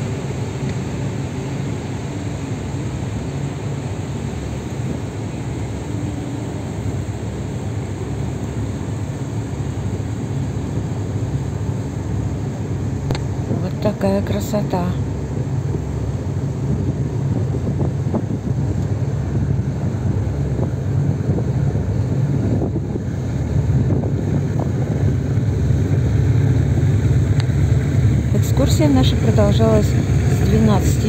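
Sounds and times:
boat engine rumble: 0:00.0 - 0:31.0
wind buffeting microphone: 0:00.0 - 0:31.0.

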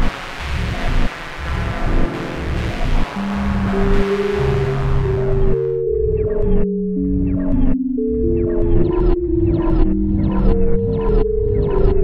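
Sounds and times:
chopped sampled loop: 0:00.0 - 0:12.0
sliding synthesized tones: 0:00.0 - 0:12.0.

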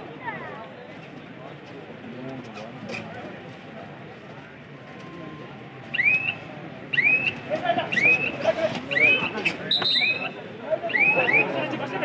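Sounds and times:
crowd murmur: 0:00.0 - 0:12.0
loud whistle: 0:05.9 - 0:11.6.

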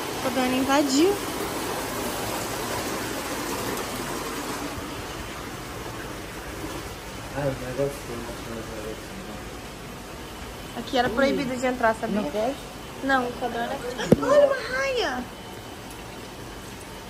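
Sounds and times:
water splashing down waterfall: 0:00.0 - 0:08.9.

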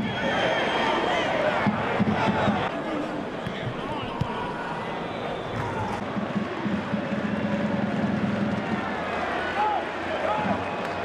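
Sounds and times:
crowd voices din: 0:00.0 - 0:11.0.

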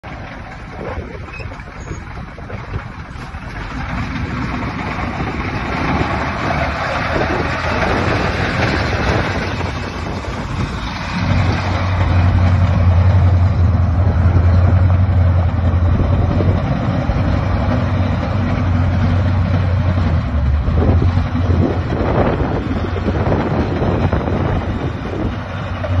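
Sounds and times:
truck engine driving on gravel: 0:00.0 - 0:26.0.

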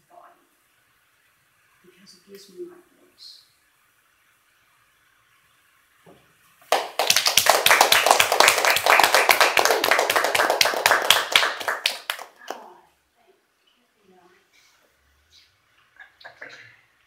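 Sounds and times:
audience applause: 0:06.7 - 0:12.7.

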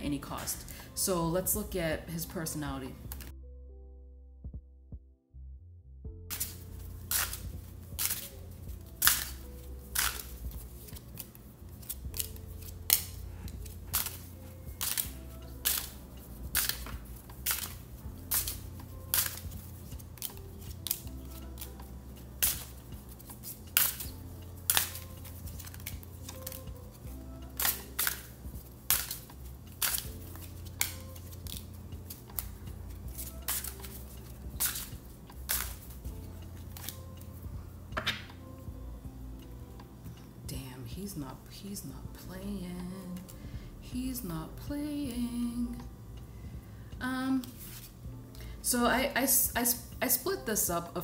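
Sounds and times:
soft background music: 0:00.0 - 0:51.0
cards laid on wooden table: 0:35.5 - 0:36.0, 0:38.0 - 0:38.4, 0:47.4 - 0:47.9.

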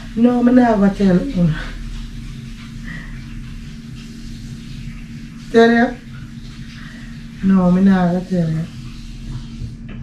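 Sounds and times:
ceiling fan humming: 0:00.0 - 0:10.0.

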